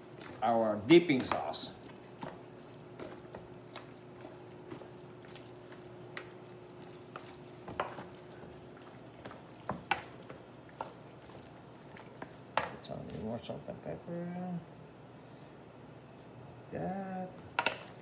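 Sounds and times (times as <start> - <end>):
spatula stirring wet chicken: 0.0 - 16.0
faint steady hum: 0.0 - 18.0.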